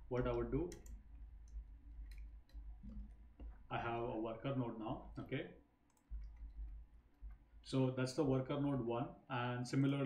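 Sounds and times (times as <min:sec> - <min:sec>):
person speaking: 0:00.0 - 0:05.7
keyboard and mouse clicks: 0:00.2 - 0:03.6, 0:05.9 - 0:07.4.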